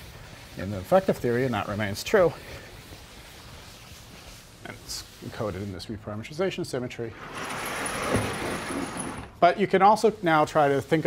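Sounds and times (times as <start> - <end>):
chalkboard panel sliding on tracks: 7.1 - 9.4.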